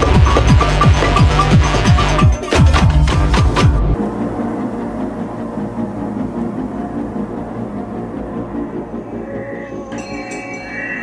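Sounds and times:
electronic track with heavy beat: 0.0s - 4.0s
ambient music drone: 0.0s - 11.0s.

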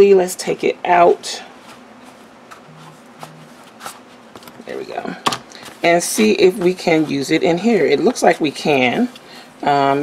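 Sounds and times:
notebook rustling: 1.6s - 8.9s.

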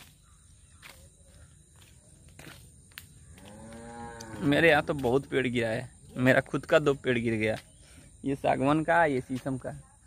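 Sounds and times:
footsteps on grass: 0.0s - 6.5s.

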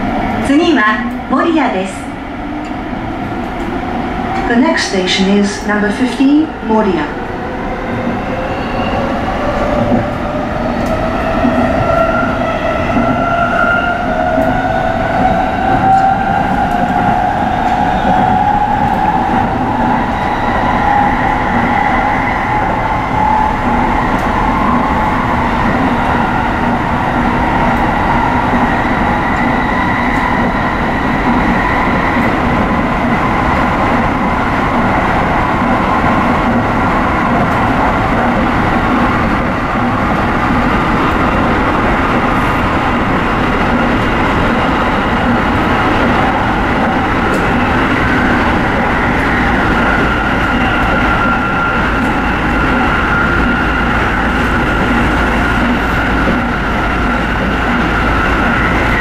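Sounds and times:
wheel and rail rumble: 0.0s - 59.0s.

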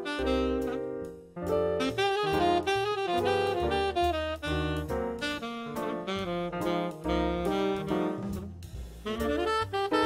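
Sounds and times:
instrumental jazz music: 0.0s - 10.0s.

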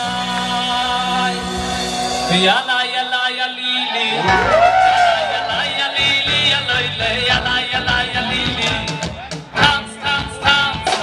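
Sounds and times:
drums: 0.0s - 3.0s, 4.1s - 11.0s
electric guitar: 3.8s - 11.0s.

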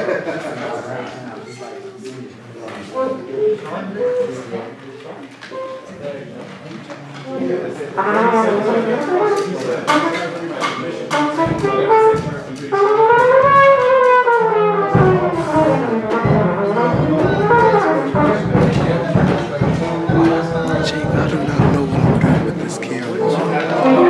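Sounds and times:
jazz big band playing: 7.4s - 24.0s.

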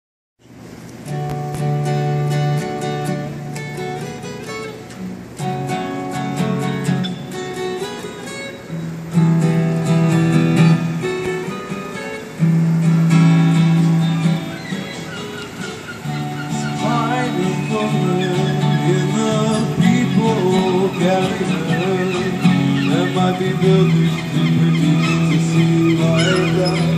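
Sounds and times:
acoustic guitar strummed chords: 1.0s - 26.9s.

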